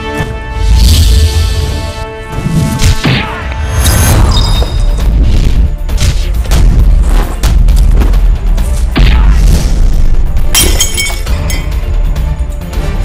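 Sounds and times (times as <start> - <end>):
action film score with heavy bass: 0.0 - 13.0.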